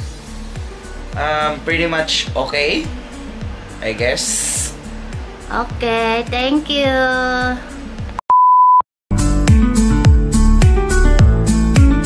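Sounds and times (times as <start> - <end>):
high beep: 8.2 - 8.8.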